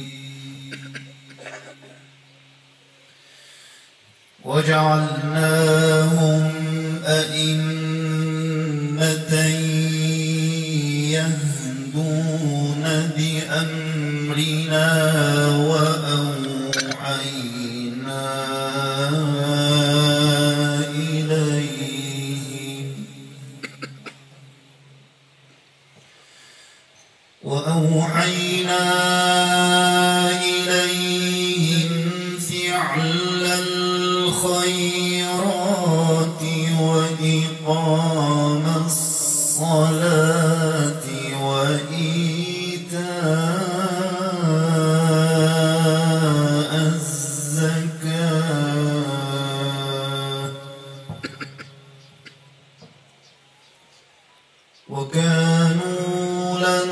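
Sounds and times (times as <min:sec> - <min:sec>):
man chanting melodically: 0:00.0 - 0:02.8, 0:04.4 - 0:25.1, 0:27.4 - 0:53.0, 0:54.8 - 0:56.9.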